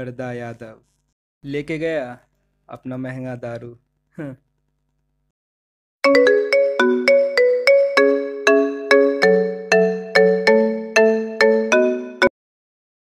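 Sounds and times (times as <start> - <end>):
mobile phone ringtone melody: 6.0 - 12.3.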